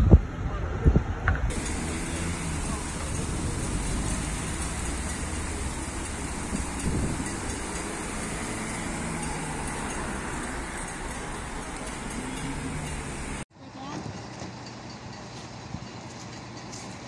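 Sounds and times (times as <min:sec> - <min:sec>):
vehicle engines humming: 0:00.0 - 0:13.5.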